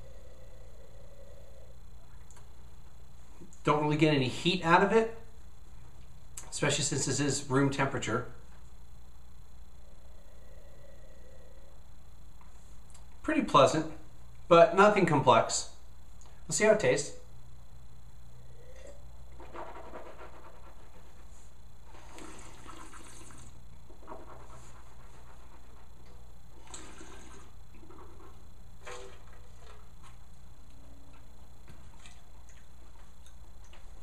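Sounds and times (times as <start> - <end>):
low steady hum: 0.0 - 34.0
person slurping wine: 21.9 - 23.6, 26.6 - 28.2.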